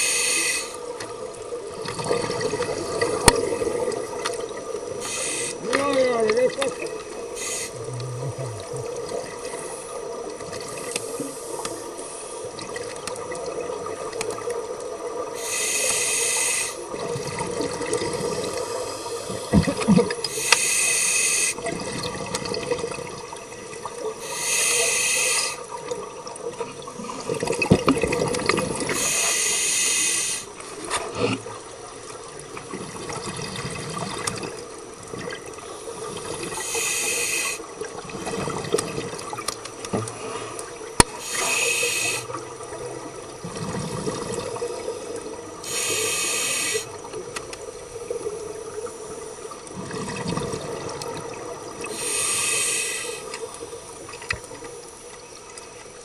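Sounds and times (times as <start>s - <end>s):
steady underwater murmur: 0.0s - 56.0s
regulator exhaust bubbles: 7.8s - 9.4s.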